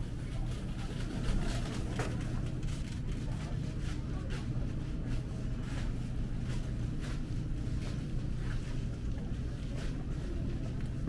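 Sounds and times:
machinery hum and rumble: 0:00.0 - 0:11.0.

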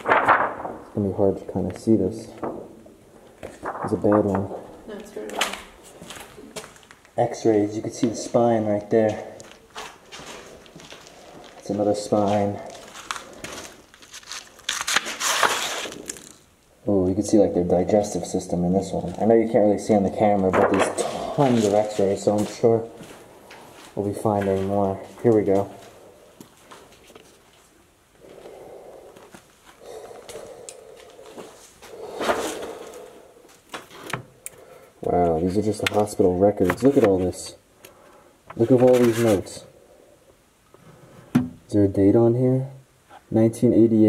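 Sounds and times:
stiff film sheets rustling: 0:00.0 - 0:07.1, 0:09.4 - 0:16.6, 0:20.5 - 0:25.2, 0:29.2 - 0:34.6, 0:35.2 - 0:37.4, 0:38.5 - 0:39.6
scuffing and rustling of movement: 0:09.0 - 0:16.4, 0:21.4 - 0:27.8.

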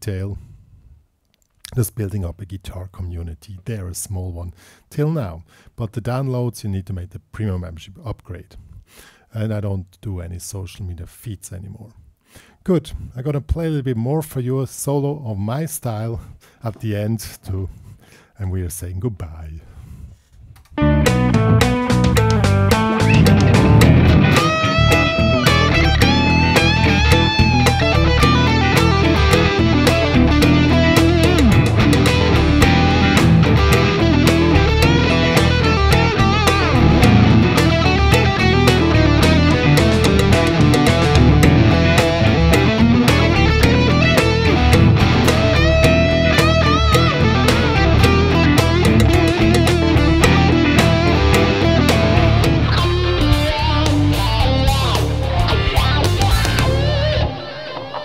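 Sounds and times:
backing track: 0:20.8 - 0:58.0
electric guitar solo: 0:20.8 - 0:58.0.

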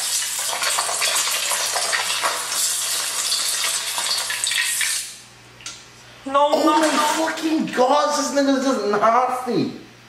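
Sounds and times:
egg sizzling in oil: 0:00.0 - 0:05.2.

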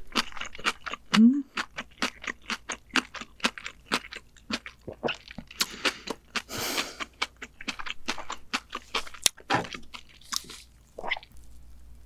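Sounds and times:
chewing and crunching food: 0:00.0 - 0:11.8.

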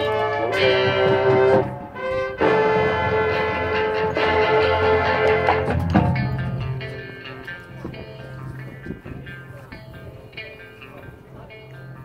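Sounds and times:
marching band brass chords: 0:00.0 - 0:08.9.

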